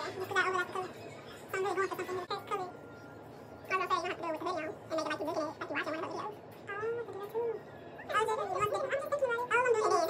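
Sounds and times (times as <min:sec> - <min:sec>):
high-pitched warbling voice: 0:03.7 - 0:10.0.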